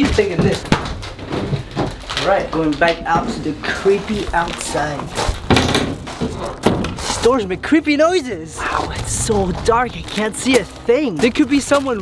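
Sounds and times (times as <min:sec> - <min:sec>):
door thunk: 0:05.3 - 0:07.0.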